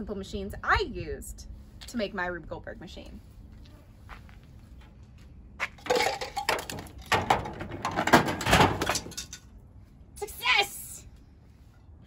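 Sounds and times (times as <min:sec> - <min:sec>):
machine parts clattering and rattling: 0:05.8 - 0:09.5.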